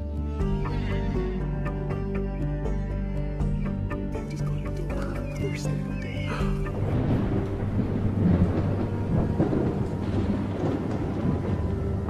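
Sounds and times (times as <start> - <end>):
thunder-like low rumble: 6.5 - 12.0.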